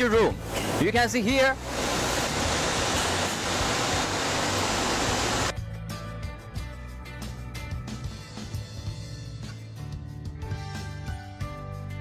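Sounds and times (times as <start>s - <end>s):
loud rushing factory noise: 1.5s - 5.5s
background music: 3.4s - 12.0s.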